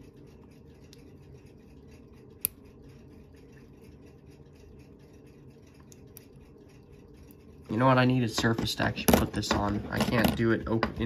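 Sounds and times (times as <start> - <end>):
faint steady hum: 0.0 - 11.0
tweezers clicking on watch parts: 2.3 - 2.7.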